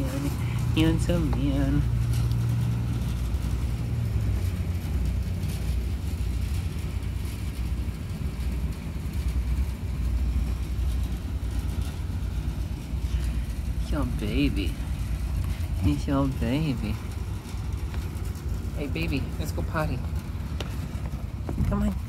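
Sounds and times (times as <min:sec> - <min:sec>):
low steady rumble: 0:00.0 - 0:22.0.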